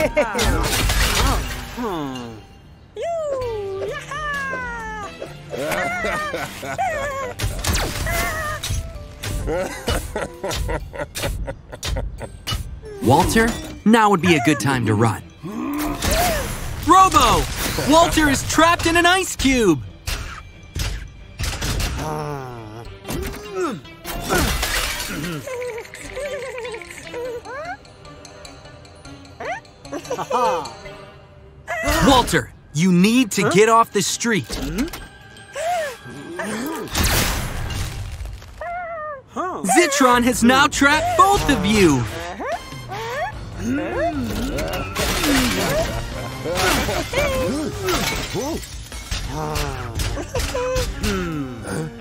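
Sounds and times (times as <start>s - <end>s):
background music wavering melody: 0.0s - 37.9s, 38.9s - 52.0s
character's wordless cries: 1.2s - 7.4s, 12.8s - 17.0s, 31.7s - 32.4s, 38.7s - 48.7s
ice cubes crashing and shattering: 37.0s - 38.6s, 45.0s - 49.6s.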